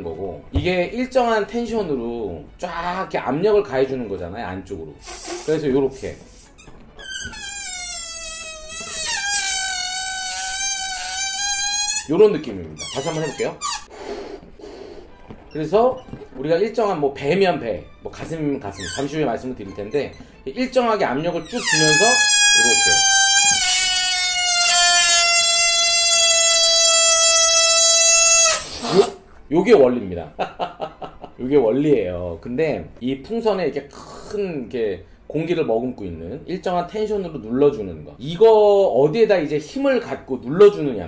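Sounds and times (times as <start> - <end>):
air squealing out of balloon: 5.0 - 15.2, 18.6 - 20.5, 21.2 - 29.2.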